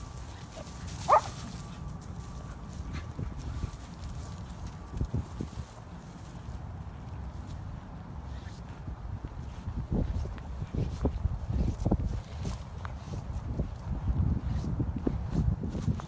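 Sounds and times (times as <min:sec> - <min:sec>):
low steady rumble: 0:00.0 - 0:16.0
dog yelping: 0:01.1 - 0:01.4.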